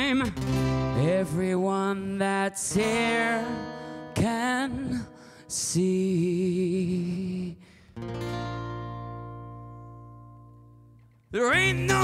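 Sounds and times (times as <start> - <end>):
acoustic guitar chord strummed: 0.0 - 12.0.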